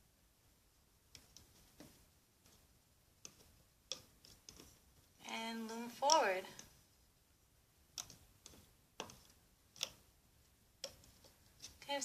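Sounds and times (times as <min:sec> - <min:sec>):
faint plastic clicks: 0:01.1 - 0:06.9, 0:07.9 - 0:12.0.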